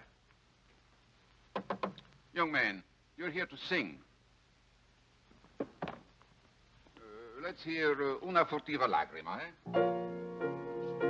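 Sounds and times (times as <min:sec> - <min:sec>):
faint low steady hum: 0:00.0 - 0:11.0
man saying uh: 0:07.0 - 0:07.9.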